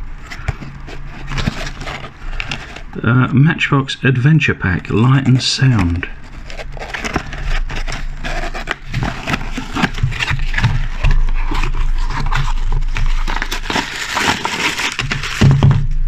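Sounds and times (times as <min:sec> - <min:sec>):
plastic bags crinkling: 0:04.7 - 0:16.0.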